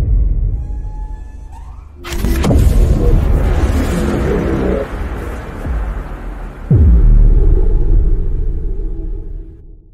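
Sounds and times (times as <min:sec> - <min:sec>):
loud impact with falling pitch: 0:00.6 - 0:09.7
deep sustained rumble: 0:00.6 - 0:09.9.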